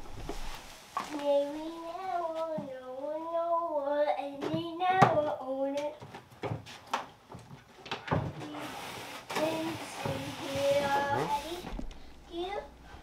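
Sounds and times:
rustling: 0:00.0 - 0:03.3
child singing and vocalizing: 0:01.1 - 0:06.0, 0:08.4 - 0:12.8.

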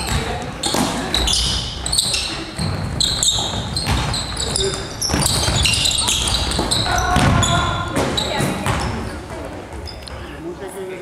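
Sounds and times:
basketball bouncing: 0:00.0 - 0:09.9
sneakers squeaking: 0:00.0 - 0:10.4
voices calling out: 0:00.0 - 0:10.4.

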